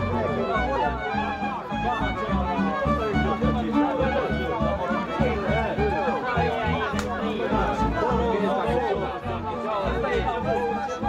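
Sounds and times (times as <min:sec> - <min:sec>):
folk music with steady beat: 0:00.0 - 0:11.0
outdoor crowd chatter: 0:00.0 - 0:11.0.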